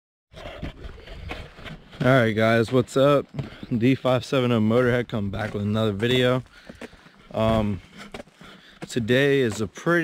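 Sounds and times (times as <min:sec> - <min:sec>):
wind rumbling on microphone: 0:00.4 - 0:02.0
footsteps on gravel: 0:00.4 - 0:10.0.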